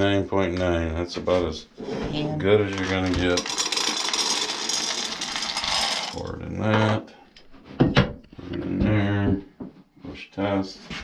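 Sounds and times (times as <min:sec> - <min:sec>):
corn kernels poured rattling: 0:02.7 - 0:06.2.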